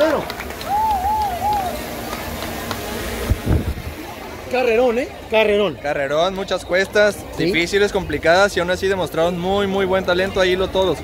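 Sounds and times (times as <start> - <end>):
outdoor street noise: 0.0 - 11.0.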